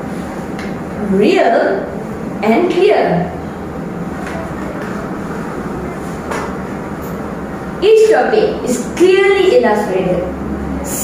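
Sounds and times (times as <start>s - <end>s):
room background rumble and hiss: 0.0s - 11.0s.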